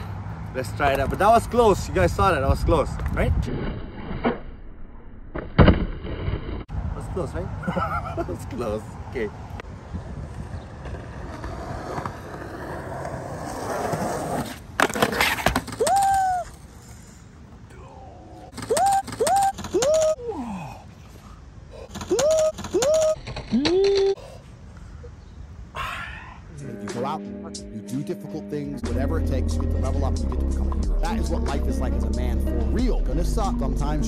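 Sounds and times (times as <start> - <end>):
skateboard wheels rolling on concrete: 0.0 - 4.4, 8.3 - 20.2
skateboard clattering on ground: 10.8 - 16.6
person crying out: 15.7 - 16.6, 18.3 - 20.8, 22.0 - 24.2.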